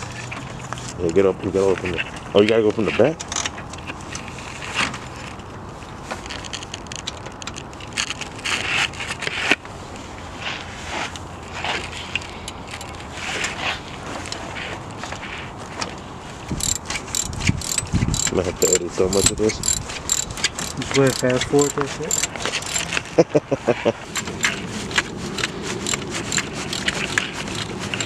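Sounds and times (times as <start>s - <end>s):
ratchet wrench clicking: 16.6s - 23.0s, 25.4s - 27.1s
tools scraping and knocking: 16.6s - 23.1s, 24.1s - 28.0s.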